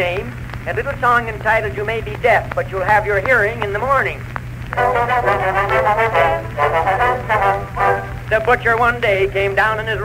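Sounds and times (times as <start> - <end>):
steady low hum: 0.0 - 10.0
brass band playing: 4.8 - 8.3.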